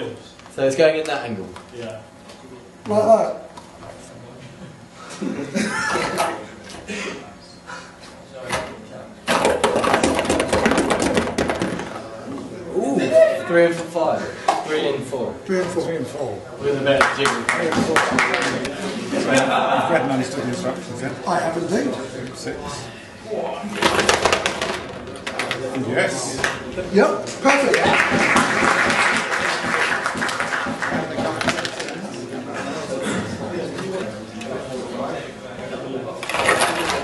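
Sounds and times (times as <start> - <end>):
ping pong balls rattling in sorter: 9.3 - 12.2, 23.7 - 26.6, 27.6 - 32.0, 36.2 - 37.0.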